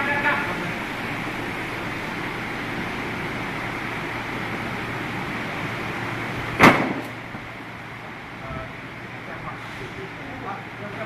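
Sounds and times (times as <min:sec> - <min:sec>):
mechanical background noise: 0:00.0 - 0:11.0
sharp slam: 0:06.6 - 0:07.2.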